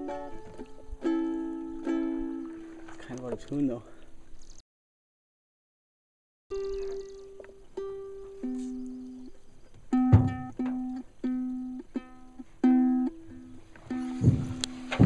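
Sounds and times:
ukulele plucked: 0:00.0 - 0:03.4, 0:06.5 - 0:15.0
dull thumps: 0:09.8 - 0:10.9, 0:13.8 - 0:15.0.

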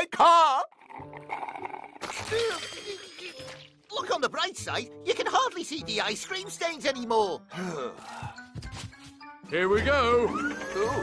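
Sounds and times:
background music: 0:00.0 - 0:11.0
cartoon juice squirting and splattering: 0:00.7 - 0:03.9.

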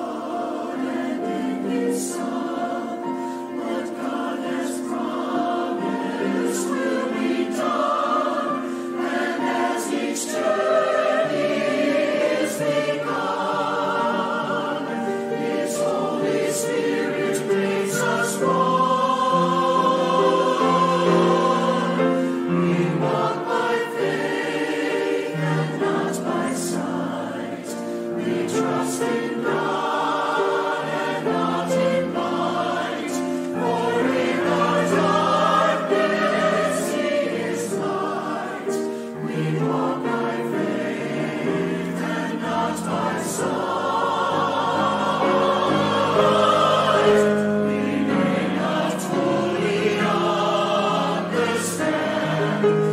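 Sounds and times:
grand piano: 0:00.0 - 0:52.9
mixed choir singing: 0:00.0 - 0:52.9.

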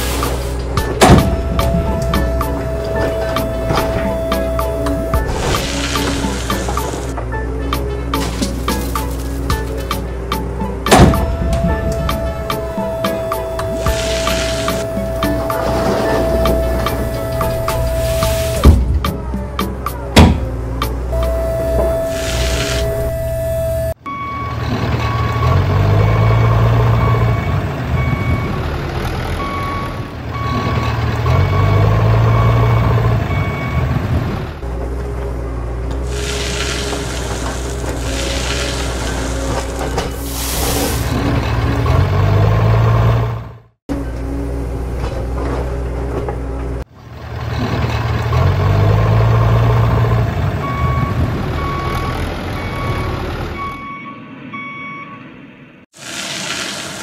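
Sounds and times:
sand sliding out of trailer: 0:00.0 - 0:00.8, 0:03.0 - 0:07.2, 0:12.8 - 0:18.6, 0:22.0 - 0:23.0, 0:36.0 - 0:42.2, 0:56.0 - 0:57.0
truck engine revving: 0:00.0 - 0:54.8
reversing beeps: 0:01.2 - 0:05.6, 0:11.2 - 0:18.7, 0:21.1 - 0:28.6, 0:29.4 - 0:33.9, 0:50.6 - 0:55.3.

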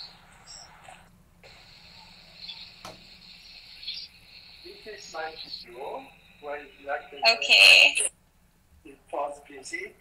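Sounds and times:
faint high hiss: 0:00.0 - 0:08.1.

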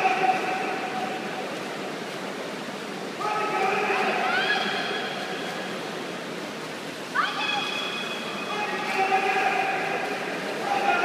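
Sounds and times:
indoor pool hall noise: 0:00.0 - 0:11.0
spectator shouting encouragement: 0:03.2 - 0:05.0.

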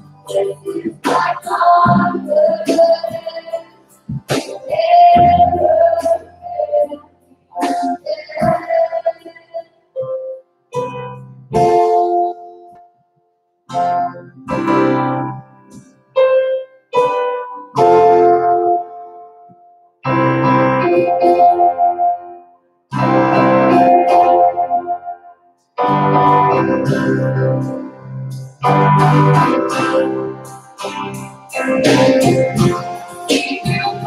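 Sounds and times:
live worship band music: 0:00.0 - 0:10.2, 0:22.9 - 0:25.1, 0:25.8 - 0:34.0
keyboard playing slow chords: 0:00.0 - 0:13.1, 0:13.7 - 0:34.0.

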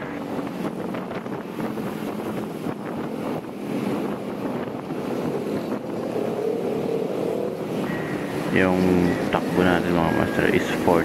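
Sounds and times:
scooter engine humming: 0:00.0 - 0:11.0
wind rushing over microphone: 0:00.0 - 0:11.0.

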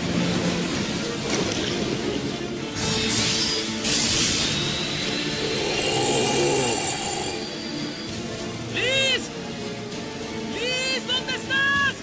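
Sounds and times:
dense orchestral music: 0:00.0 - 0:12.0
rush of noise: 0:03.0 - 0:08.2.

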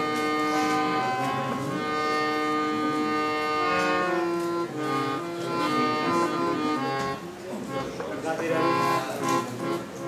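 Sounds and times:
harmonium playing chords: 0:00.0 - 0:10.0.

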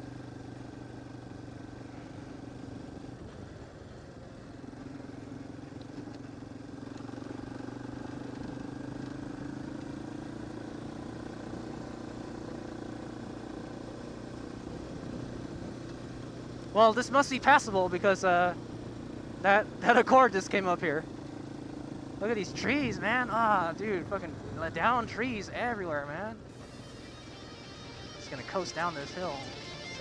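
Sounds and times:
quad engine running: 0:00.0 - 0:30.0.

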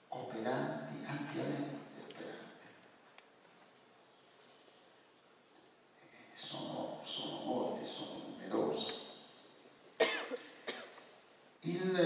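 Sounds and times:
person coughing: 0:10.0 - 0:11.0.

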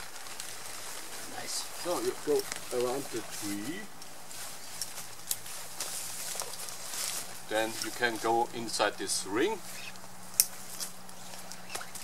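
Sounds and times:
faint rustling: 0:00.0 - 0:12.0
footsteps on forest ground: 0:00.0 - 0:12.0.

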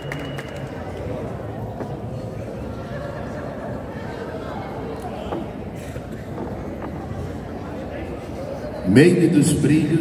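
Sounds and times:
crowd and room rumble: 0:00.0 - 0:10.0
faint murmured voices: 0:00.0 - 0:10.0.

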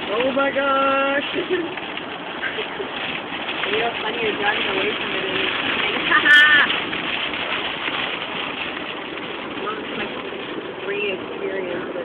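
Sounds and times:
rain on car windshield: 0:00.0 - 0:12.0
tyre noise on wet road: 0:00.0 - 0:12.0.

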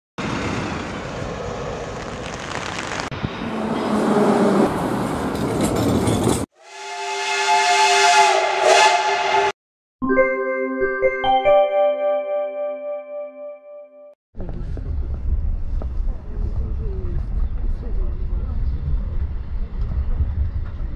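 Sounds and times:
street and vehicle noise: 0:00.2 - 0:06.5, 0:14.4 - 0:20.9
held multi-tone horn: 0:06.6 - 0:09.6.

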